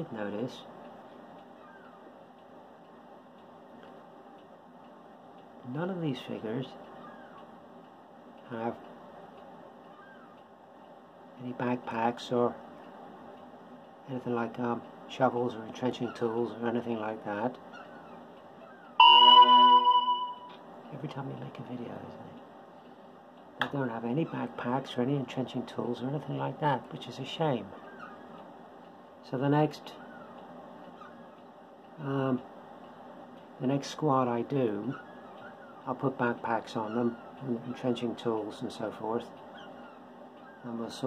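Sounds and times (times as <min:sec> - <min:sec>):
clock bell chime: 0:19.0 - 0:20.6
short bending call: 0:19.0 - 0:20.6.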